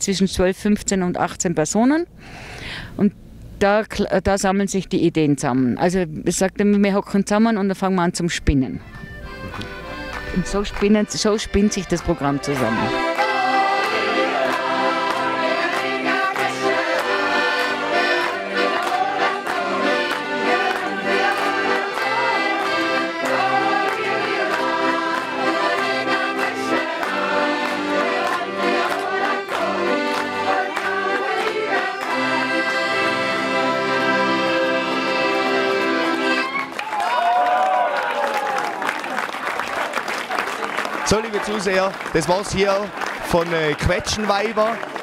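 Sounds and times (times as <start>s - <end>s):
accordions playing chords: 8.7s - 36.8s
women singing: 12.4s - 35.0s.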